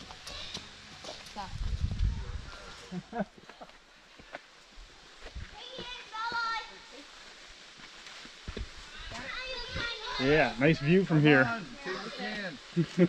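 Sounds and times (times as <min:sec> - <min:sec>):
footsteps on dirt trail: 0:03.3 - 0:10.6.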